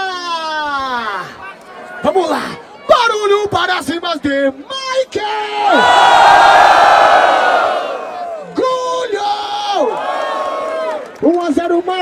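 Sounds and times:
crowd cheering and screaming: 5.6s - 8.6s.

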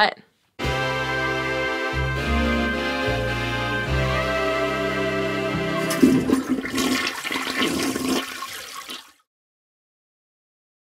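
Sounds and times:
toilet flushing: 5.7s - 9.2s.

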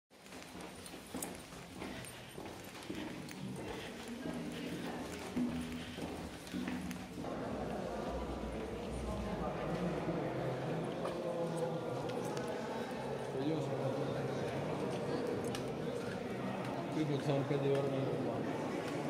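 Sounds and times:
footsteps on tunnel floor: 0.1s - 10.1s
crowd chatter: 0.2s - 19.0s
people talking: 2.0s - 19.0s.

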